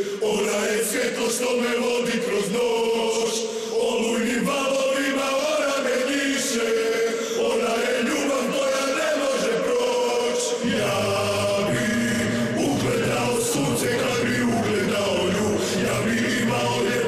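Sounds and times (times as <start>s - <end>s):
men chanting in unison: 0.0s - 17.0s
music: 6.6s - 17.0s.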